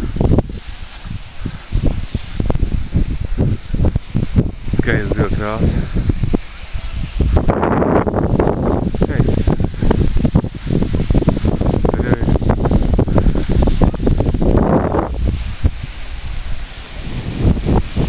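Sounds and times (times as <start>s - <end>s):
microphone handling noise: 0.0s - 18.0s
wind rumble on microphone: 0.0s - 18.0s.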